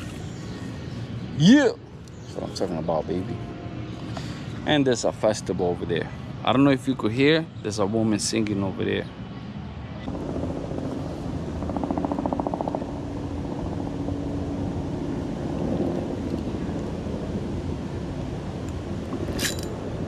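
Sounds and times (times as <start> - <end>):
low outdoor rumble: 9.9 - 20.0.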